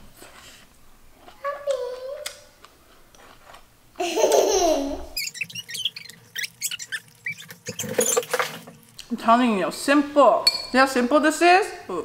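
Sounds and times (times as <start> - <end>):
person laughing: 4.0 - 5.2.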